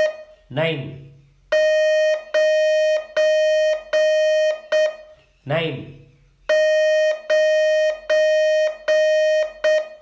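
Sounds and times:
morse code beeps: 0.0 - 0.4, 1.5 - 5.2, 6.5 - 10.0.

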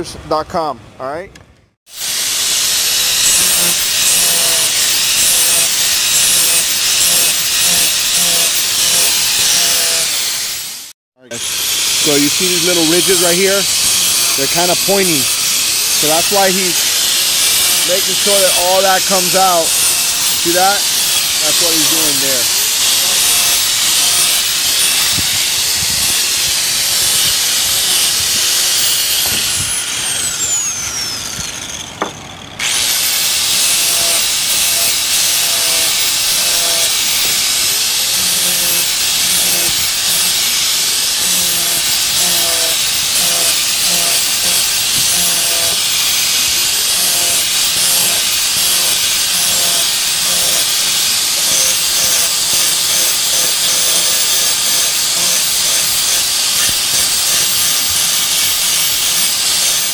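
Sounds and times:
angle grinder grinding: 1.9 - 59.9.

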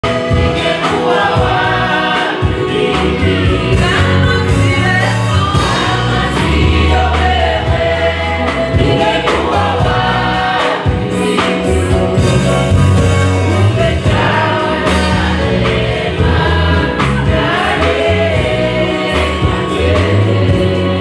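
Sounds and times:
bass line: 0.0 - 21.0
drum strokes: 0.0 - 21.0
group singing gospel song: 0.0 - 21.0.

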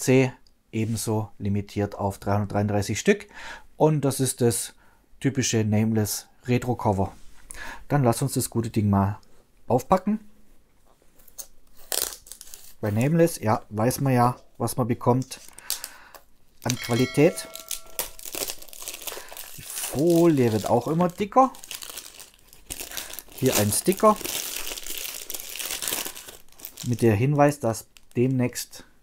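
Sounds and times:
plastic film crackling: 11.3 - 12.8, 15.2 - 16.0, 17.6 - 27.2, 27.9 - 28.2
plastic film ripping: 11.3 - 12.8, 18.2 - 27.0.

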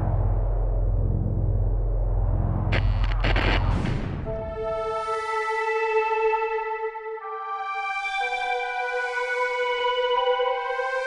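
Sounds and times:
deep steady rumble: 0.0 - 4.8.

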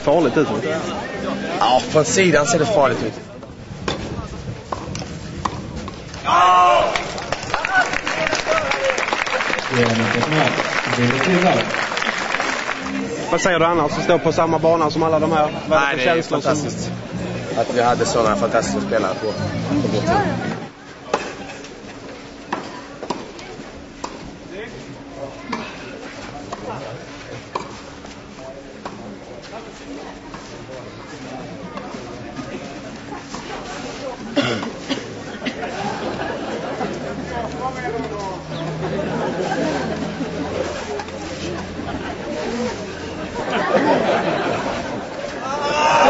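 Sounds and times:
low crowd murmur: 0.0 - 46.0
tennis balls struck and bouncing: 3.8 - 6.2.

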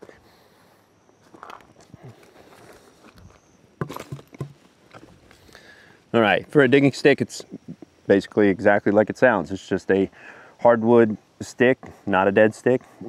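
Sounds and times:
loud crunches and knocks: 2.5 - 5.3.

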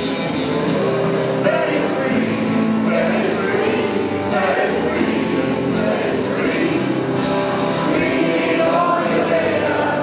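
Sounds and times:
acoustic and electric guitars: 0.0 - 10.0.

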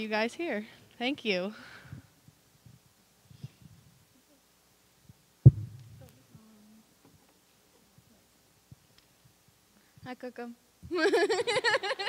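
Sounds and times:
faint microphone handling noise: 1.8 - 4.3, 5.0 - 10.1
microphone handling thump: 5.4 - 6.2.

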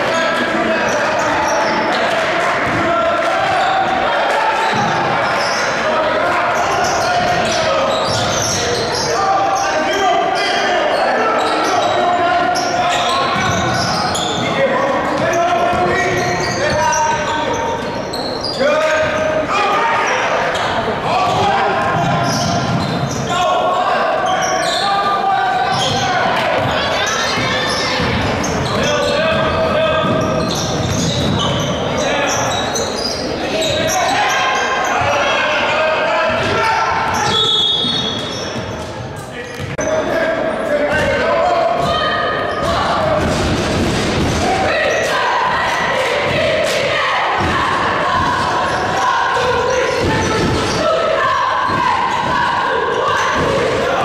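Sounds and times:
people shouting and talking: 0.0 - 54.0.

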